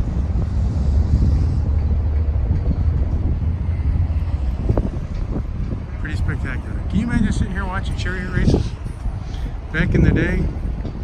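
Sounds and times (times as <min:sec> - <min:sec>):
faint road traffic hum: 0:00.0 - 0:11.0
wind buffeting microphone: 0:00.0 - 0:11.0.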